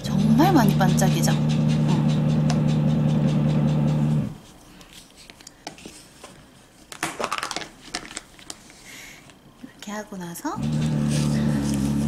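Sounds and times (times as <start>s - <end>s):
motorised tool humming: 0.0s - 4.4s, 10.6s - 12.0s.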